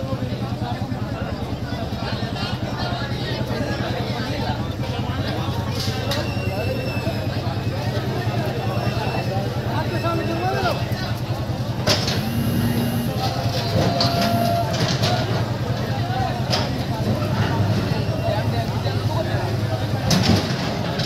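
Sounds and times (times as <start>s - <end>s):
crowd voices: 0.0s - 21.0s
diesel engine running: 0.1s - 21.0s.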